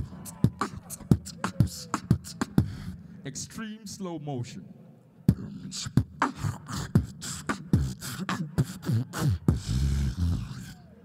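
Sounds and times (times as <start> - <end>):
beatboxing vocal drum strokes: 0.0 - 3.0, 5.3 - 10.9.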